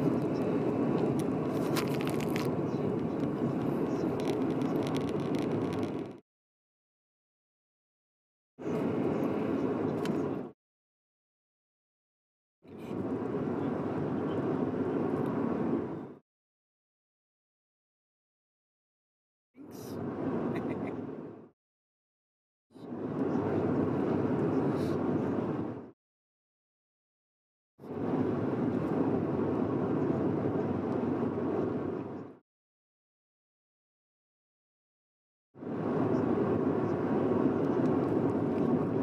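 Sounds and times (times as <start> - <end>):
car cabin road and engine drone: 0.0 - 6.2, 8.6 - 10.6, 12.7 - 16.2, 19.6 - 21.5, 22.9 - 25.9, 27.8 - 32.4, 35.6 - 39.0.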